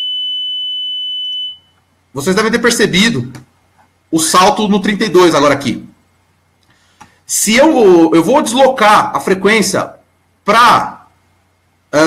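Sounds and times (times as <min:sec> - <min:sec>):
high sine test tone: 0:00.0 - 0:02.3.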